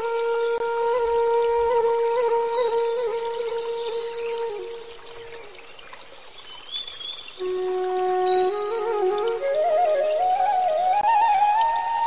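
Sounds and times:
slow flute music: 0.0 - 6.0, 7.3 - 12.0.

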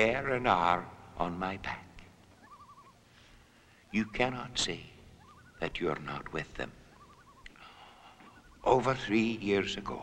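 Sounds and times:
bird quavering call: 2.2 - 10.0.

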